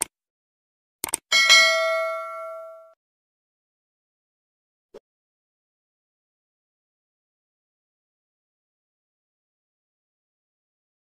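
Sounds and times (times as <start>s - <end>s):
mouse clicks: 1.0s - 1.2s
notification bell ding: 1.3s - 3.0s.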